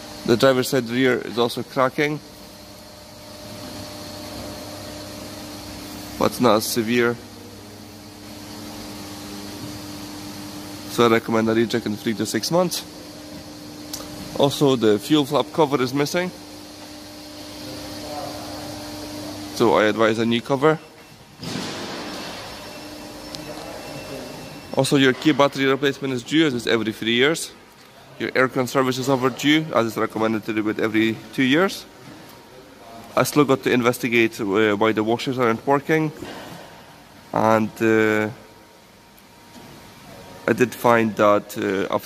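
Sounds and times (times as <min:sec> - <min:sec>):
workshop hum and hiss: 0:00.0 - 0:42.0.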